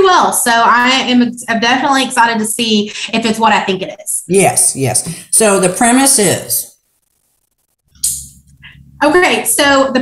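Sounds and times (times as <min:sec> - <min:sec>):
faint microphone hum: 0:00.0 - 0:10.0.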